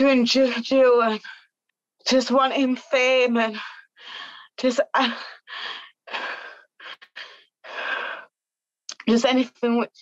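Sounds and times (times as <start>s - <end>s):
woman breathing heavily: 3.5s - 8.5s.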